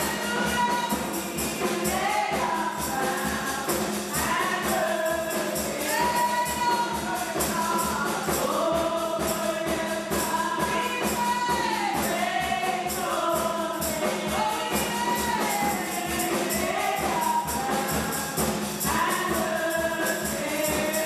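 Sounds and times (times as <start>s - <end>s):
steady percussion beat: 0.0s - 21.0s
women singing gospel song: 0.0s - 21.0s.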